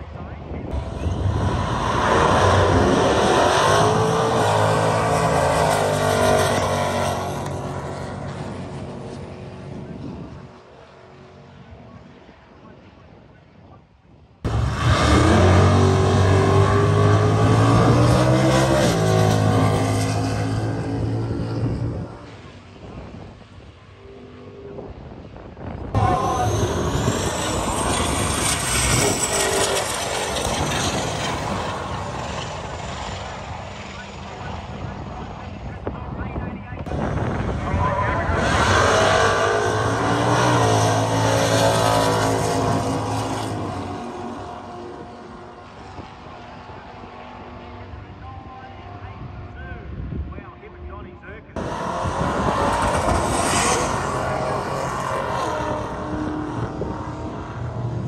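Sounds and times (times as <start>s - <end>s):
drag racing cars accelerating: 0.6s - 12.2s, 14.4s - 49.6s, 51.5s - 58.0s
high whine: 23.9s - 46.1s.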